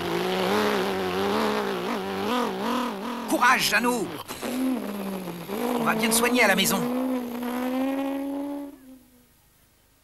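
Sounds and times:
jeep engine driving off: 0.0 - 9.3.

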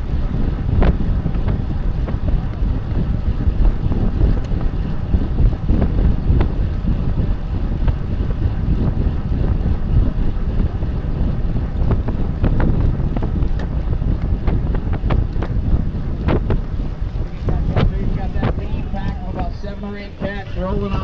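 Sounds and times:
road noise: 0.0 - 21.0
wind rumble on microphone: 0.0 - 21.0
bicycle clicks and knocks: 11.7 - 19.2.

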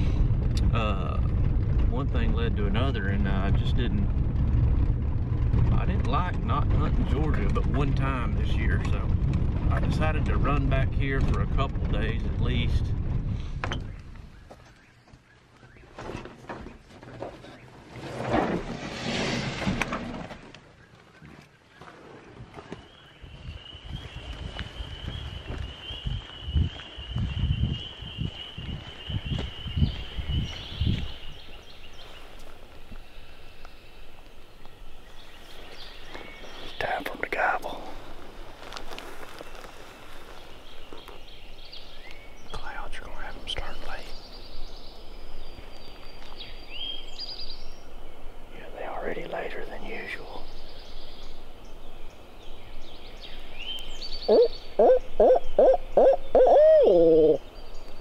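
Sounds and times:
bird calls: 13.7 - 17.9, 20.6 - 58.0
footsteps in woods: 20.6 - 42.5, 43.7 - 47.8.

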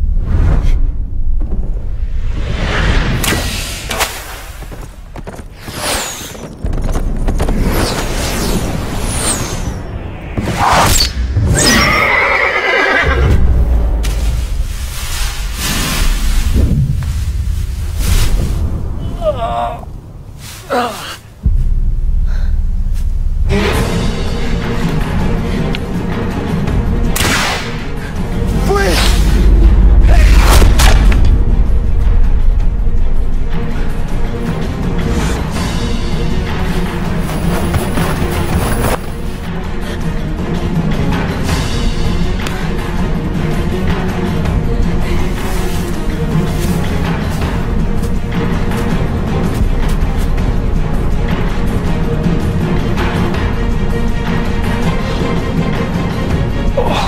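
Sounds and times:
dramatic film score music: 0.0 - 57.0
arrow whooshing: 2.2 - 4.8, 7.5 - 11.9, 27.2 - 27.8
arrows whistling in flight: 5.6 - 6.4, 7.7 - 12.2
horse whinnying: 11.6 - 13.2
low rumble: 13.2 - 20.4, 21.2 - 25.8
sharp strikes: 27.1 - 27.9.

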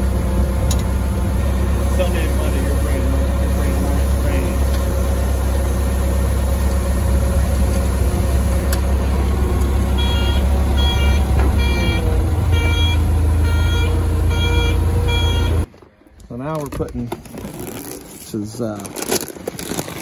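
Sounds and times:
forklift engine running: 0.0 - 15.7
reverse alarm beeping: 9.9 - 15.7.

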